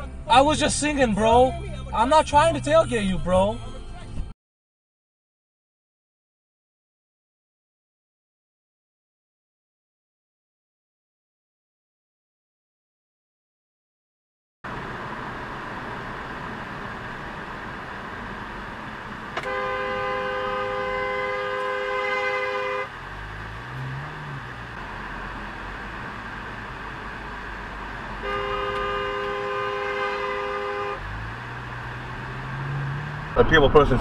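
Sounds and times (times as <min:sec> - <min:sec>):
road and engine noise: 0:00.0 - 0:04.4, 0:14.6 - 0:34.0
car horn blasts: 0:19.4 - 0:23.0, 0:28.1 - 0:31.2.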